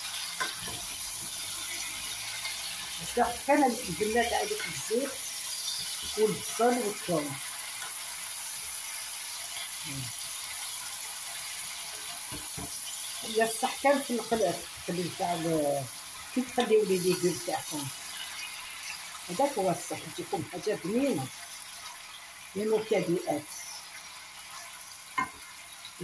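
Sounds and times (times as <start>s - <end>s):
vegetables frying in oil: 0.0s - 26.0s
person talking: 3.0s - 5.2s, 6.1s - 7.4s, 9.8s - 10.1s, 13.2s - 17.9s, 19.3s - 21.3s, 22.6s - 23.7s.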